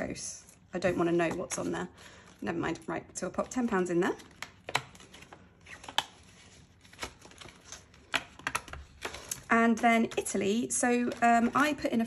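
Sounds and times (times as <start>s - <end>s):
plastic binder pocket rustling: 3.1s - 12.0s.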